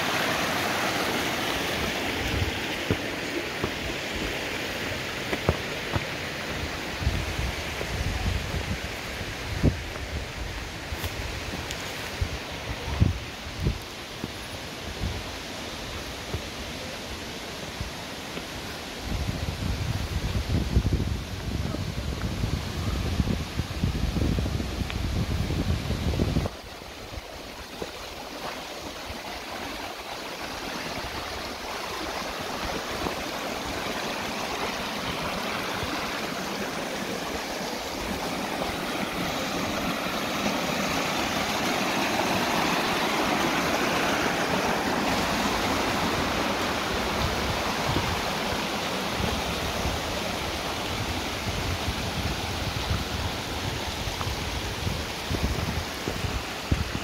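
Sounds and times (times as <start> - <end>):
stream running over rocks: 0.0 - 57.0
wind rumble on microphone: 6.6 - 16.5, 19.0 - 28.4, 39.8 - 57.0.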